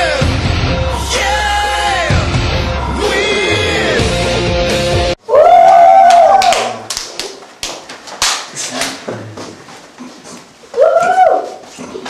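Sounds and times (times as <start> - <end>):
sharp claps and slaps: 6.1 - 9.0.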